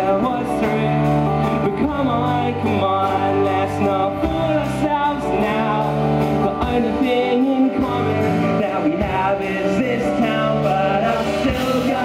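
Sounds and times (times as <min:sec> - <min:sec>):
guitars: 0:00.0 - 0:12.0
low bass notes: 0:00.0 - 0:12.0
man singing: 0:00.0 - 0:12.0.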